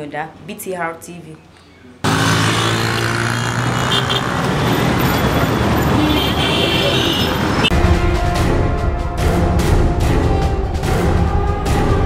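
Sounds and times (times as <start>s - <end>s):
engines and road noise: 1.4s - 8.2s.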